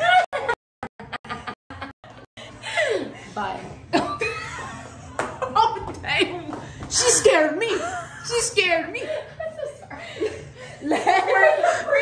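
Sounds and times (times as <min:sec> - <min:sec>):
people chuckling and laughing: 0:00.0 - 0:12.0.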